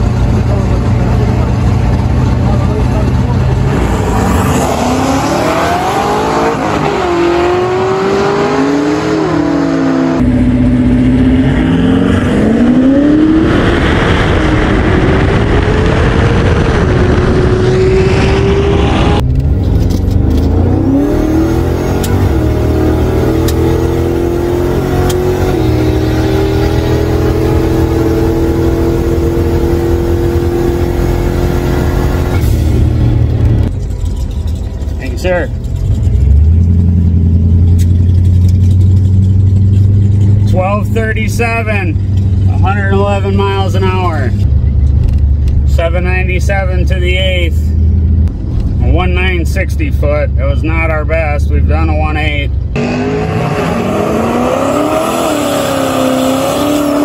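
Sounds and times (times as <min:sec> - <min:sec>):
car engine at full throttle: 0:00.0 - 0:57.0.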